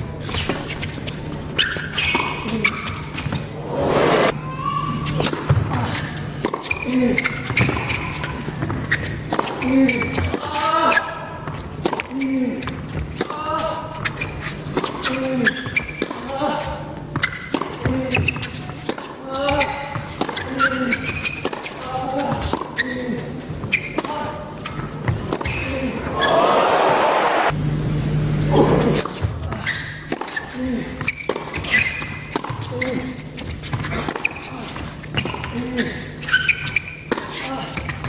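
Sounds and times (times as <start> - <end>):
crowd applauding: 26.4 - 27.5.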